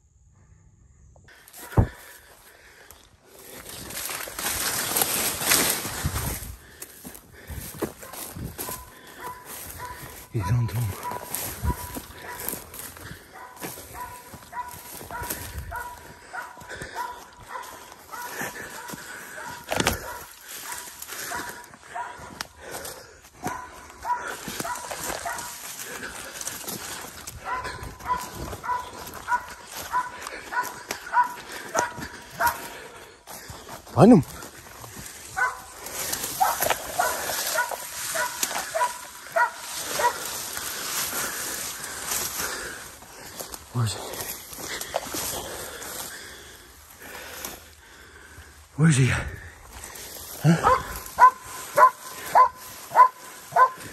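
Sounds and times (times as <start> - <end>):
brush rustling: 1.3 - 53.9
dog barking: 8.0 - 22.4, 23.4 - 26.1, 27.4 - 32.7, 35.4 - 35.7, 36.3 - 40.3, 50.4 - 53.9.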